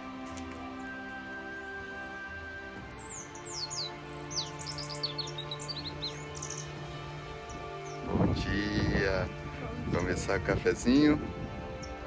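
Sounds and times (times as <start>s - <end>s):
background music: 0.0s - 12.0s
birds chirping: 0.0s - 12.0s.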